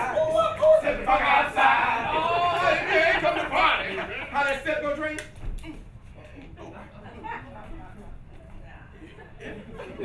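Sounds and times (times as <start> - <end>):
men shouting and chanting: 0.0 - 5.0.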